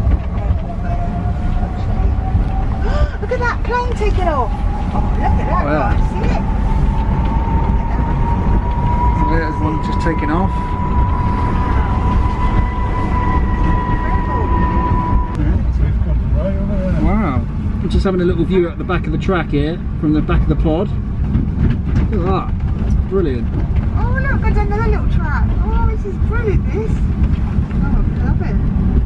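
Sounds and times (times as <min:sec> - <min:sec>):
vehicle low rumble: 0:00.0 - 0:29.0
electric whine rising in pitch: 0:00.8 - 0:15.9.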